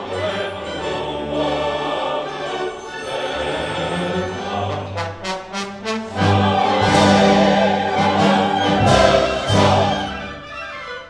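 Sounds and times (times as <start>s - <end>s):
opera chorus singing: 0.0s - 11.0s
orchestra playing: 0.0s - 11.0s.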